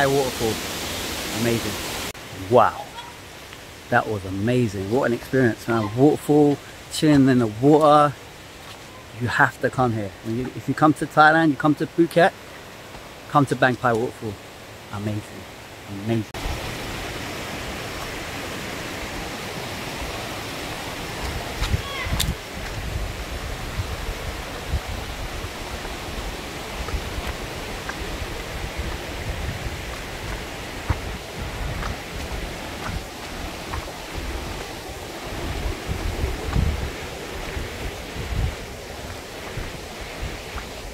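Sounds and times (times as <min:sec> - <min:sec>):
stream rushing over stones: 0:00.0 - 0:40.9
wind rumble on microphone: 0:16.4 - 0:40.9
microphone handling noise: 0:26.8 - 0:34.8, 0:35.4 - 0:39.8.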